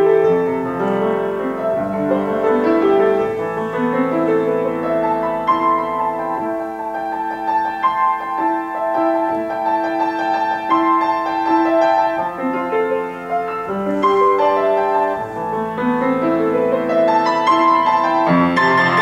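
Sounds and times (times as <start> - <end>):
grand piano playing: 0.0 - 19.0.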